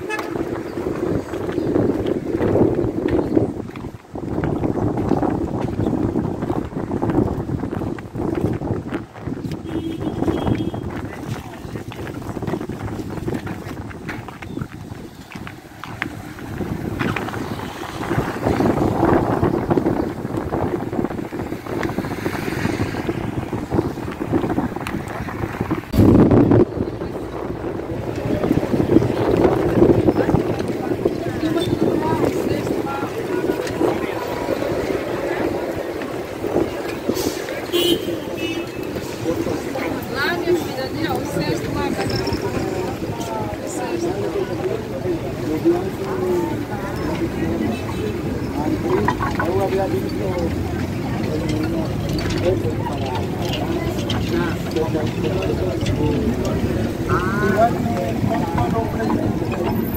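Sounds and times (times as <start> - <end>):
wind buffeting microphone: 0.0 - 59.9
indistinct background voices: 10.5 - 25.9, 26.5 - 59.9.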